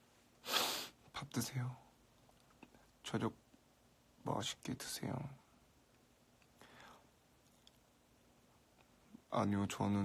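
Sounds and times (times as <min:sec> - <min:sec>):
faint breathing: 0:06.6 - 0:07.2.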